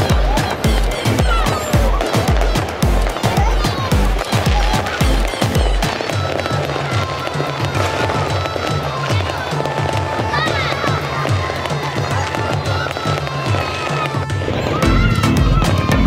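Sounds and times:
music with repeating bass line: 0.0 - 6.7, 14.8 - 16.0
fireworks bursting: 0.0 - 16.0.

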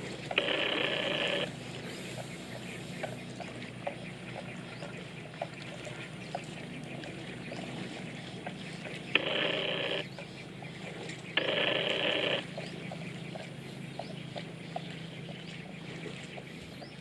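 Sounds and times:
faint scattered ticks: 0.3 - 1.5, 9.1 - 10.3, 11.0 - 12.7
harsh animal calls: 0.3 - 1.5, 9.1 - 10.2, 11.4 - 12.6.

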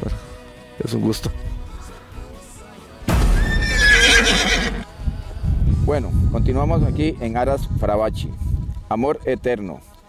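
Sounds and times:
horse whinnying: 3.4 - 4.9.

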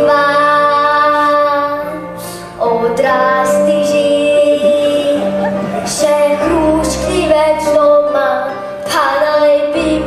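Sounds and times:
child singing: 0.0 - 10.0
instrumental accompaniment: 0.0 - 10.0.

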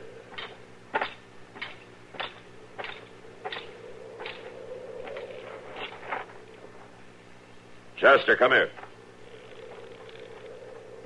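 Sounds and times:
recording hum: 0.0 - 11.0.

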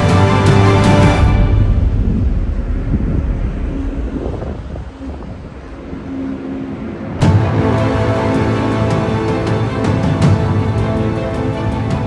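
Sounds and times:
low outdoor rumble: 1.1 - 11.8
wind buffeting microphone: 1.2 - 10.6.

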